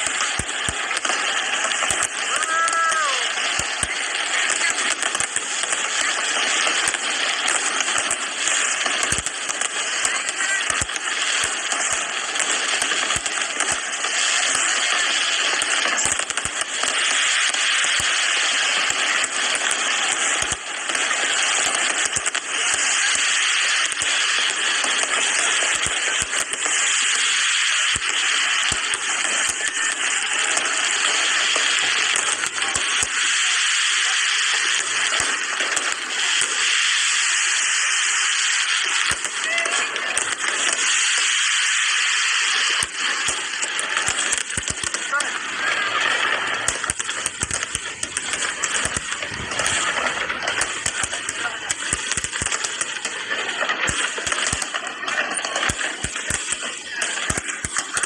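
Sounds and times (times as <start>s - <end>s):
fireworks crackling hiss: 0.0s - 58.0s
fireworks sharp bangs: 0.0s - 58.0s.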